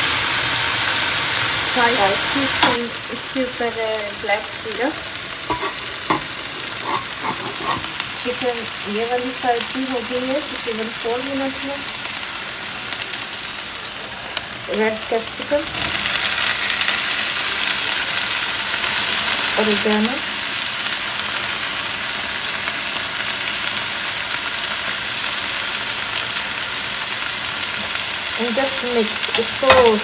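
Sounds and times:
chicken sizzling on a grill pan: 0.0s - 30.0s.

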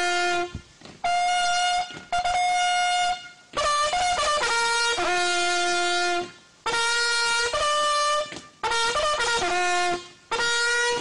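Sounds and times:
trumpet bugle call: 0.0s - 11.0s.

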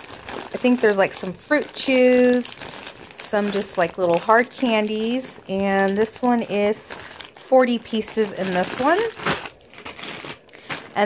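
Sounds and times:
plastic candy bags crinkling: 0.0s - 11.0s.

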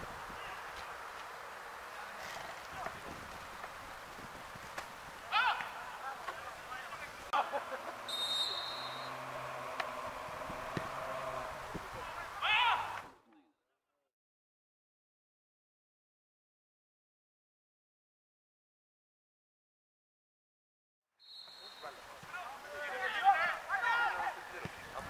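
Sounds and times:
players shouting: 5.2s - 13.2s, 21.8s - 24.9s
short high whistle blast: 8.1s - 9.1s, 21.2s - 22.0s.

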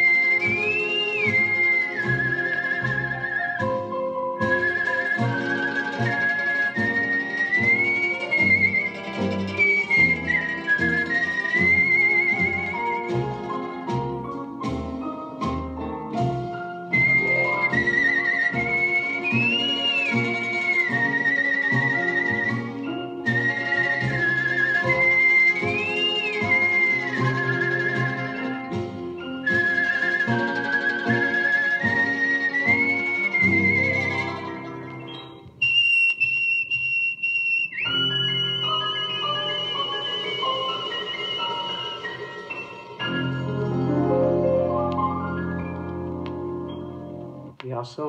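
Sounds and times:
man whistling blues melody: 0.0s - 13.3s, 16.7s - 43.8s
band accompaniment: 0.0s - 35.6s.

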